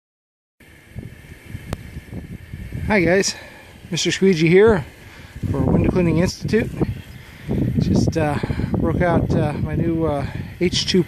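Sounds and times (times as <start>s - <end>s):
faint steady high hum: 0.6s - 11.0s
wind buffeting microphone: 0.6s - 11.0s.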